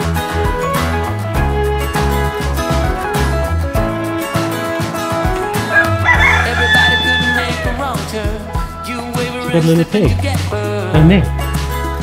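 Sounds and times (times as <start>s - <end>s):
background music with bass: 0.0s - 12.0s
rooster crowing: 5.6s - 8.0s.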